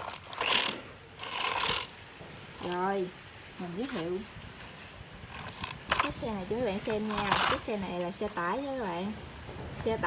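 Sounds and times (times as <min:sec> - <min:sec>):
plastic toy truck rattling: 0:00.0 - 0:02.0, 0:05.3 - 0:06.3.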